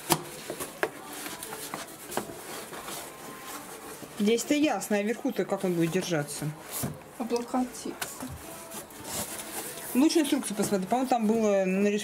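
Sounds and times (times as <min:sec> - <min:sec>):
cardboard rubbing on cardboard: 0:00.1 - 0:04.7, 0:08.2 - 0:11.8.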